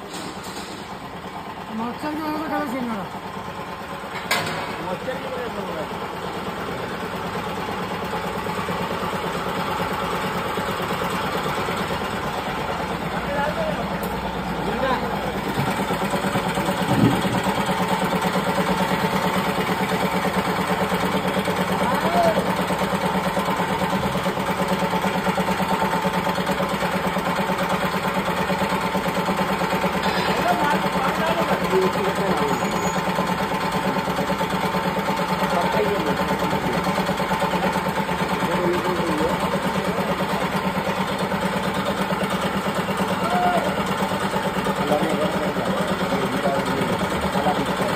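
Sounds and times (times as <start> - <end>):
grain cutting machine running: 0.0 - 47.9
machine knock: 4.1 - 4.8, 15.4 - 18.8.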